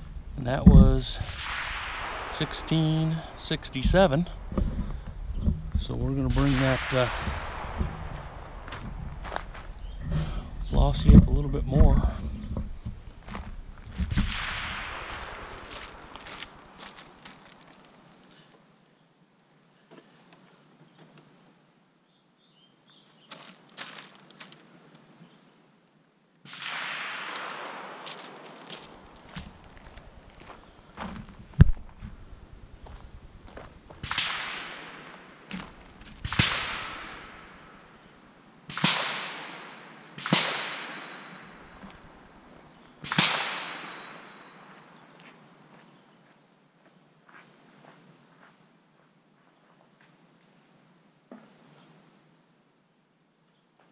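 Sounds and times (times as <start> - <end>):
rifle gunshots with echo: 0.0 - 16.8, 26.5 - 31.0, 34.0 - 38.1, 38.7 - 44.6.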